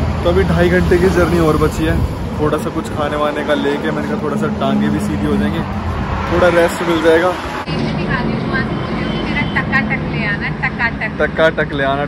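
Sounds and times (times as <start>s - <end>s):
truck engine passing: 0.0s - 12.0s.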